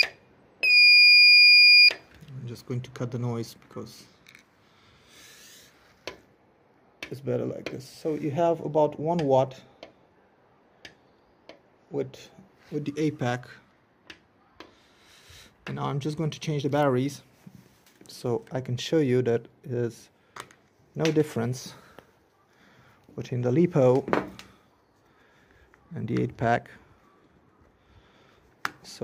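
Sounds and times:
person speaking: 2.2s - 4.3s, 7.0s - 9.8s, 11.9s - 13.8s, 14.4s - 20.2s, 20.9s - 24.7s, 25.6s - 27.7s.

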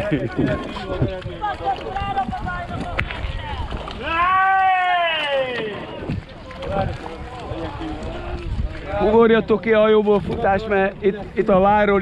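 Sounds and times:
low rumble on microphone: 5.7s - 12.0s.

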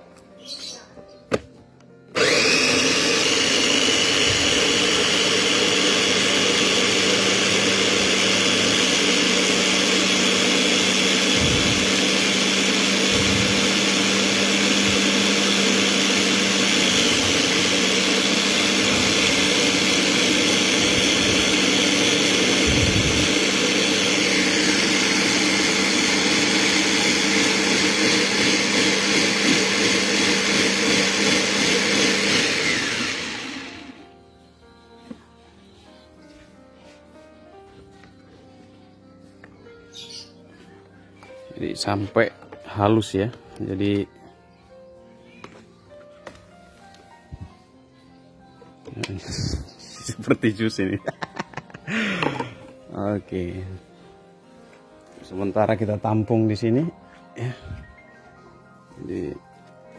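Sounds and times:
electric blender whining: 2.1s - 34.1s, 51.9s - 52.6s.

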